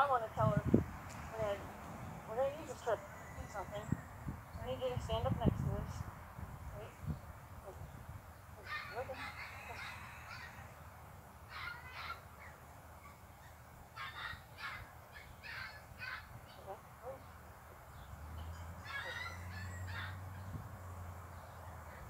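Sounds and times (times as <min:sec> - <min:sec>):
birds harsh calling: 0:00.0 - 0:05.3, 0:06.2 - 0:22.0.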